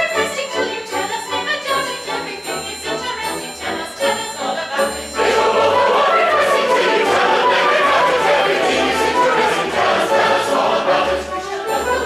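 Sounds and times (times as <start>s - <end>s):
chorus singing with orchestra: 0.0s - 12.0s.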